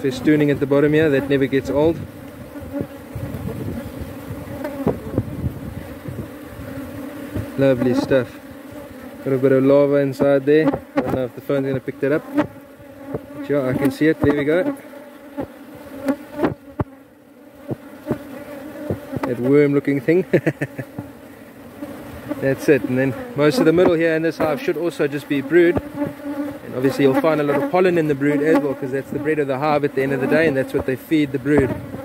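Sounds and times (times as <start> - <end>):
bees buzzing: 0.0 - 32.0.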